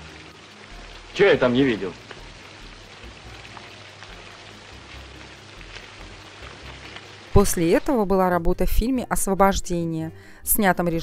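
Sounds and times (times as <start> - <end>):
steady hiss: 0.0 - 7.4.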